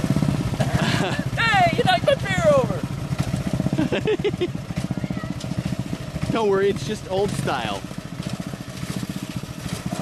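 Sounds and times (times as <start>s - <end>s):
small engine idling: 0.0s - 10.0s.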